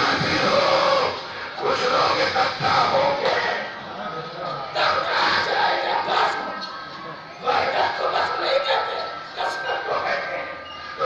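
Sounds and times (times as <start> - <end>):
men shouting in unison: 4.7 - 6.6.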